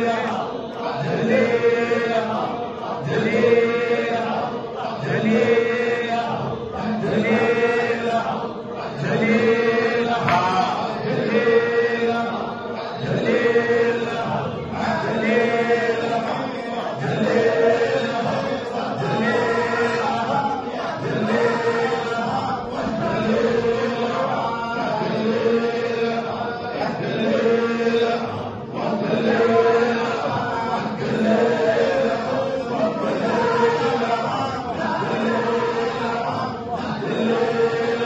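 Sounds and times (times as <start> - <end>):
men chanting together: 0.0 - 38.0.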